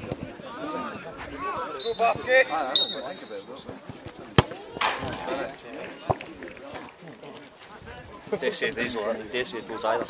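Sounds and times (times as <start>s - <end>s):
football kick thud: 4.3s - 5.1s.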